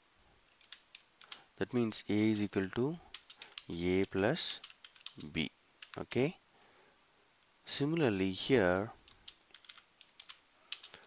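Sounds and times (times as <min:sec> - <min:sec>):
keyboard typing: 0:00.5 - 0:01.5, 0:02.5 - 0:06.1, 0:09.0 - 0:11.0.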